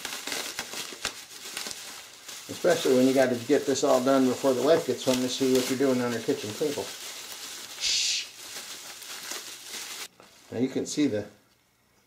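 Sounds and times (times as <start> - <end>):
bubble wrap swish: 0.0 - 10.1
bubble wrap rustling: 0.0 - 11.2.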